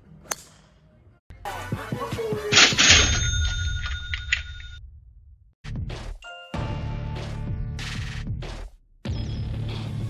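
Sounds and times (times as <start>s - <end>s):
high ringing tones: 2.6s - 4.9s.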